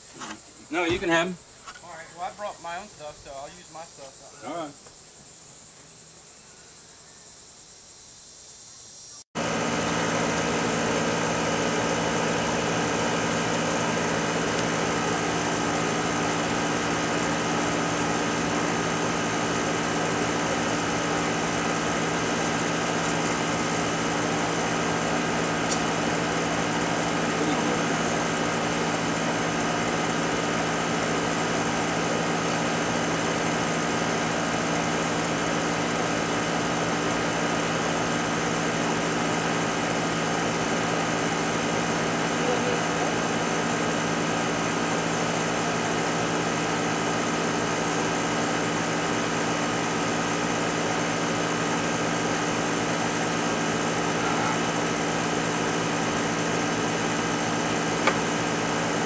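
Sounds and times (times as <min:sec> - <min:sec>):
small motor humming: 0:08.8 - 0:59.0.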